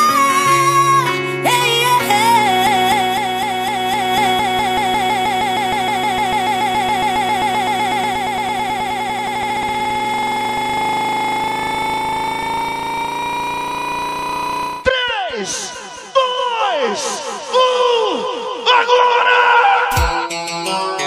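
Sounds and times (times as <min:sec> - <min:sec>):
wobbling synthesizer chord: 0:00.0 - 0:14.9.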